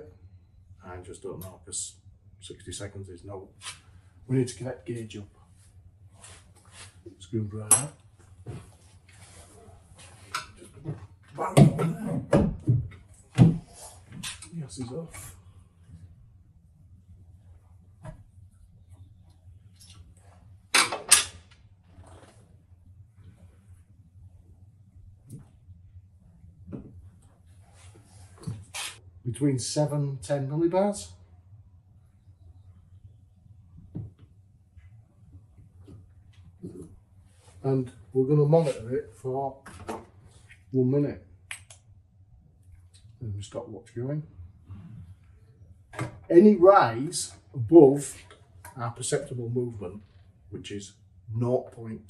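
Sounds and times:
faint low hum: 0.0s - 52.0s.

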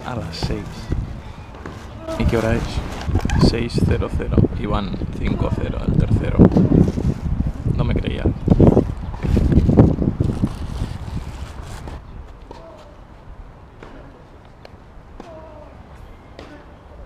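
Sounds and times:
wind on microphone: 0.0s - 13.7s.

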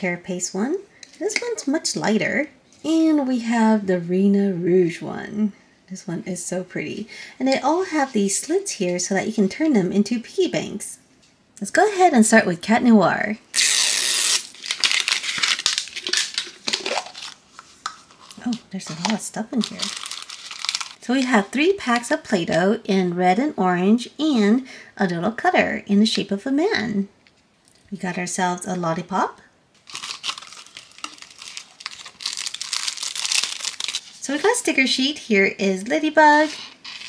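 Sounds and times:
plastic packaging ripping: 13.5s - 21.5s, 29.8s - 34.5s, 36.4s - 37.0s
plastic wrap crinkling: 13.5s - 22.0s, 29.8s - 34.7s, 36.4s - 37.0s.

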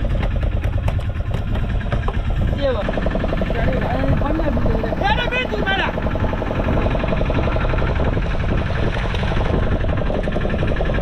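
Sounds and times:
boat engine idling: 0.0s - 11.0s.

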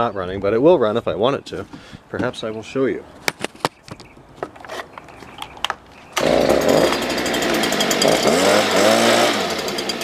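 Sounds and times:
leaf blower engine running: 6.2s - 10.0s.

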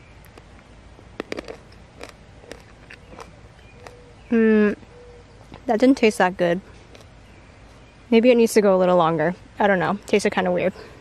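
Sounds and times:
crunching while eating: 0.1s - 4.1s, 6.8s - 7.2s.

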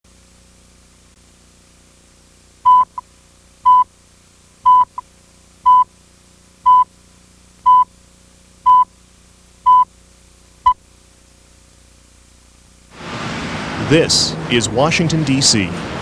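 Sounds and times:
faint steady hum: 0.1s - 13.1s
countdown beeps: 2.7s - 3.0s, 4.7s - 5.0s, 5.7s - 5.9s, 6.7s - 6.9s, 7.7s - 7.9s, 8.7s - 8.9s, 9.7s - 9.9s.

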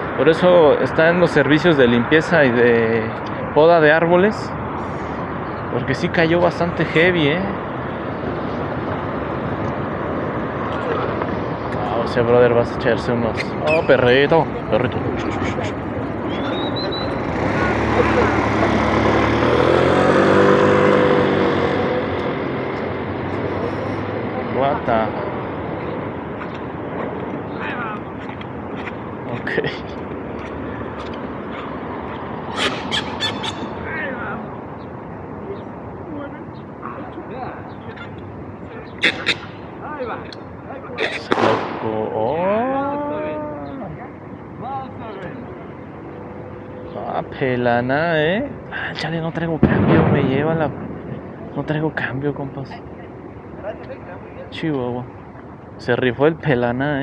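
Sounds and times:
street traffic: 0.0s - 57.0s
person calling out: 42.5s - 44.0s.

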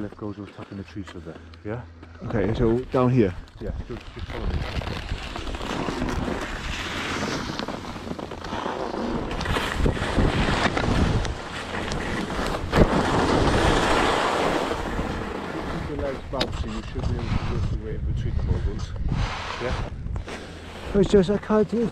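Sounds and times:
wind rumbling on microphone: 3.3s - 20.3s
skis scraping over snow: 3.8s - 18.0s, 18.8s - 21.9s.

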